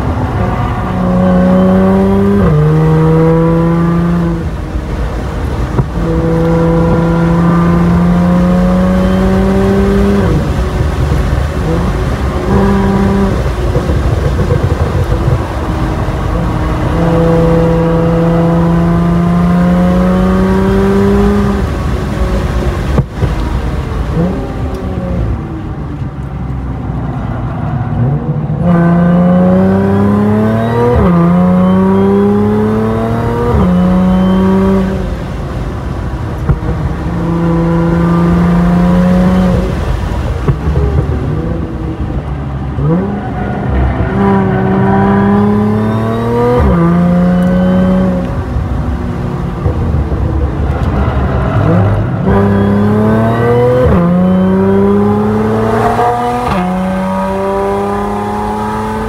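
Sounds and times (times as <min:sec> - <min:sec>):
car engine accelerating: 0:00.0 - 0:59.0.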